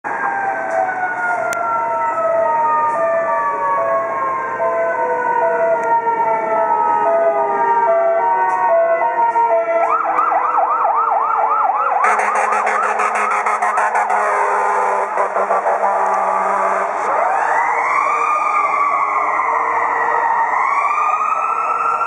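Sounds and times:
fast yelp siren: 0.1 - 22.0
two-tone hi-lo siren: 0.1 - 22.0
wailing siren falling in pitch: 0.1 - 22.0.

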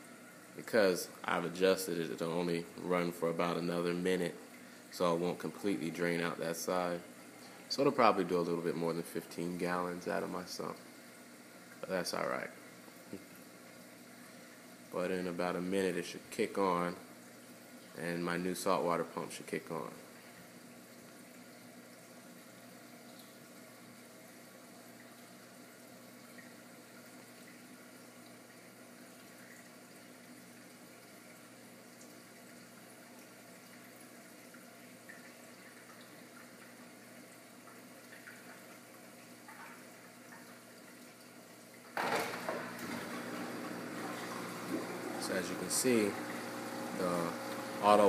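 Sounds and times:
aquarium pumps humming: 0.0 - 48.0
rush of water from pumps: 42.0 - 48.0
water moving: 42.0 - 48.0.

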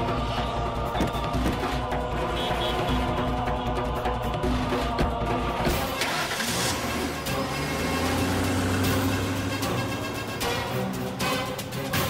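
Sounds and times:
background music: 0.0 - 12.0
vehicle engine humming: 0.0 - 12.0.

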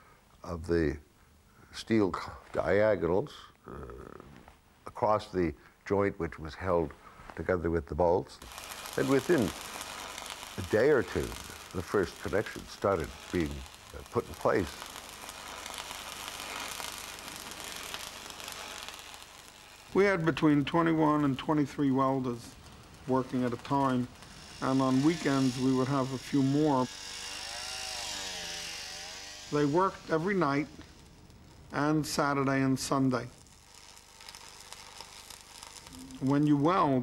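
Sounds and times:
arc welding crackling sizzle: 8.3 - 37.0.

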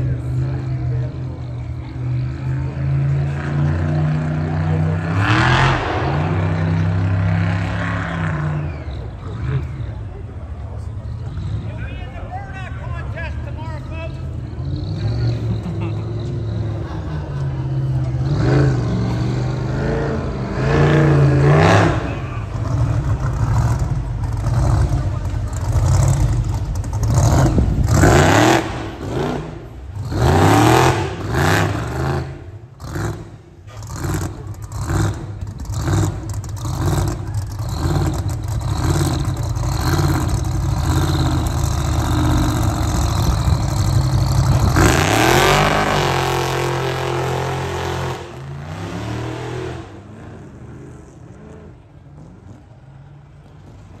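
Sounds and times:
truck engines revving: 0.0 - 54.0.

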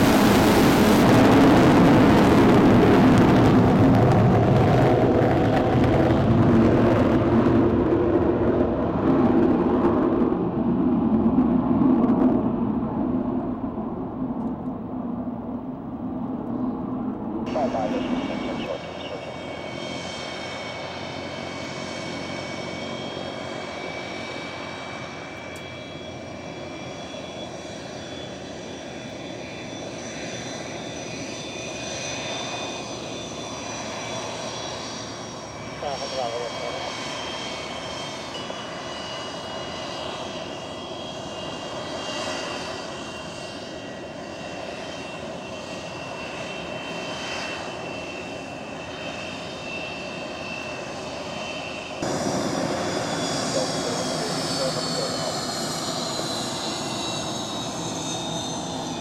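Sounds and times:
aircraft engines running: 0.0 - 59.0
high whining tones: 17.5 - 21.8.

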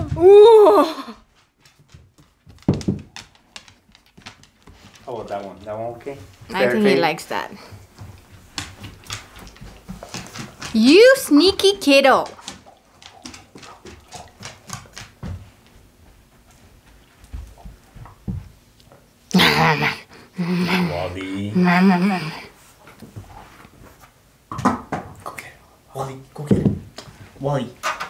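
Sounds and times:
dog paws tapping on wood floor: 0.0 - 0.4, 1.2 - 21.1, 26.3 - 28.0
dogs scuffling: 1.2 - 19.2.

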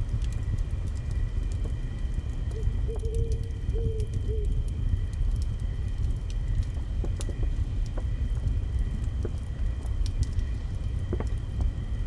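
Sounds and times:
crackling clicks: 0.0 - 11.8
low steady rumble: 0.0 - 12.0.

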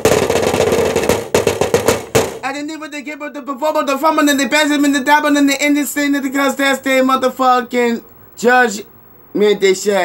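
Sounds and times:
rapid percussive hits: 0.0 - 2.5.

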